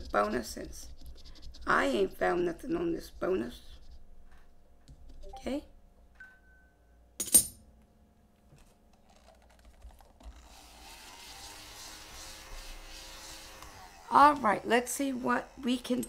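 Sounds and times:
paper rustling: 8.5s - 10.4s.

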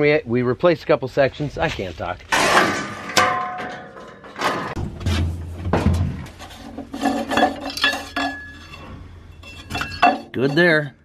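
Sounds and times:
metal clanks and clinks: 2.4s - 4.8s, 6.4s - 10.9s.

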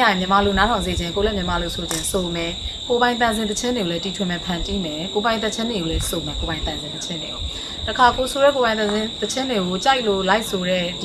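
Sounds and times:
crickets trilling: 0.0s - 11.0s
woman talking: 0.0s - 11.0s.

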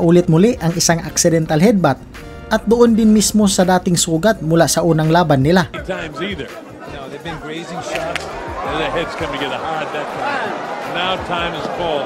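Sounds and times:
voices talking over one another: 2.6s - 12.0s
arena crowd noise: 5.7s - 12.0s.

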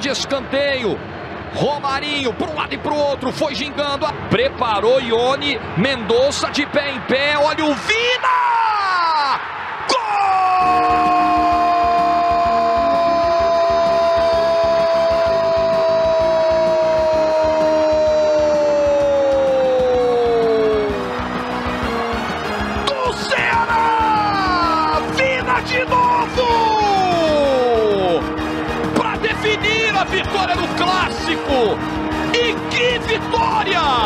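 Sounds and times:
man shouting: 7.8s - 21.0s, 22.8s - 28.1s
commentator's long goal cry: 10.0s - 20.9s
background music: 10.1s - 34.0s.

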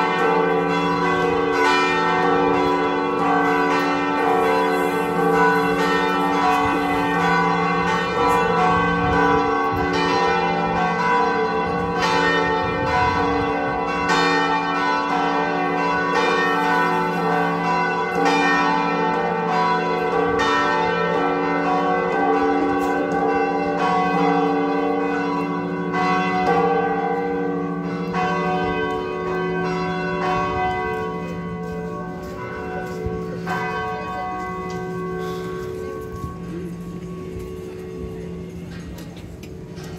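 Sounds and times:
carillon bells ringing: 0.0s - 38.8s.

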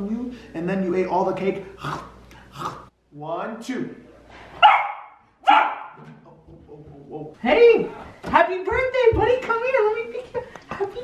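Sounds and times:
dog barking: 4.6s - 6.0s.

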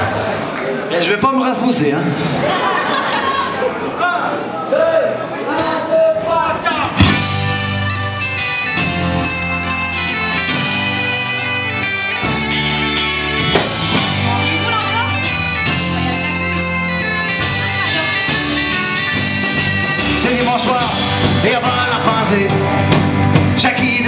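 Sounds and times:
bass: 6.6s - 24.0s
drums: 6.6s - 24.0s
bombarde melody: 6.7s - 24.0s
electric guitar: 6.8s - 24.0s.

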